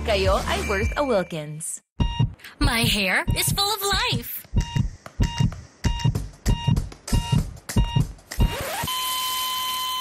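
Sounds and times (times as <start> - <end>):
short electronic beeps: 2.0 - 2.4, 3.2 - 3.6, 4.6 - 9.1
low heartbeat-like thumps: 2.0 - 8.6.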